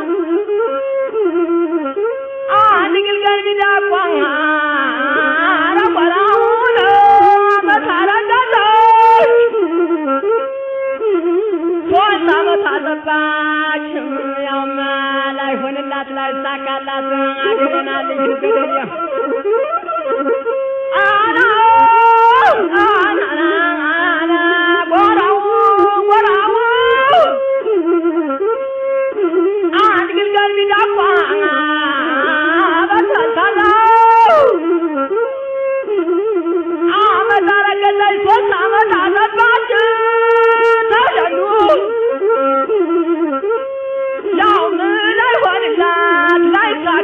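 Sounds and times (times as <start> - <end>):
flute-like wind instrument melody: 0.0 - 47.0.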